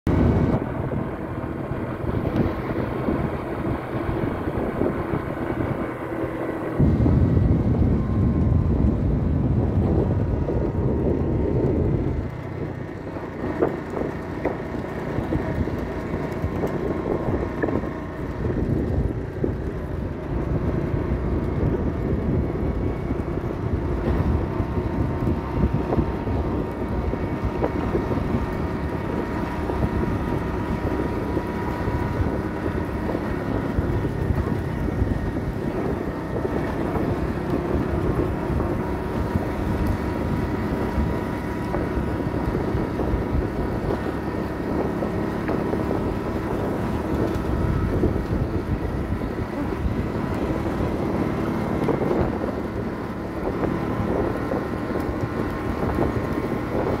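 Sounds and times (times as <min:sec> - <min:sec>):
vehicle engine running: 0:00.0 - 0:57.0
wind noise on microphone: 0:00.1 - 0:57.0.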